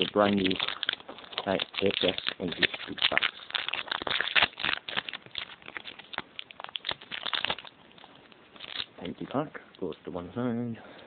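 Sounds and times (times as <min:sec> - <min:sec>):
foil wrapper crinkling: 0:00.0 - 0:10.2.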